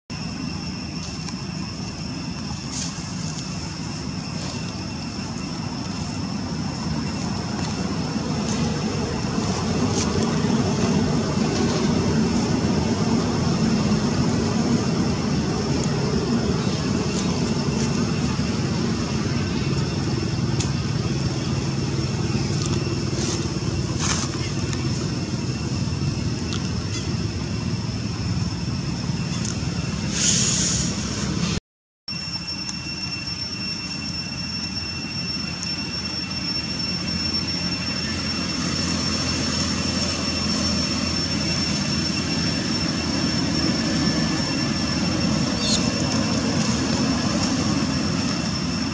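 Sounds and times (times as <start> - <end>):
low rumble of road traffic: 0.1 - 31.6, 33.0 - 48.9
steady high-pitched whine: 0.1 - 48.9.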